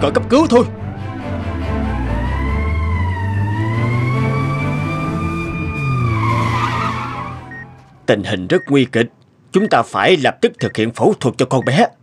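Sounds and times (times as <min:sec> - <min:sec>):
ambulance siren wailing: 0:00.8 - 0:08.2.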